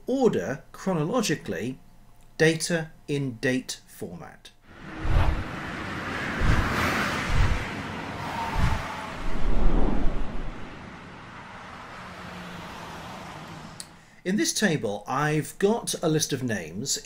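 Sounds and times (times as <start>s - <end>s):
whoosh: 4.7s - 11.1s
low rumble: 4.7s - 11.2s
deep booms: 6.4s - 7.8s.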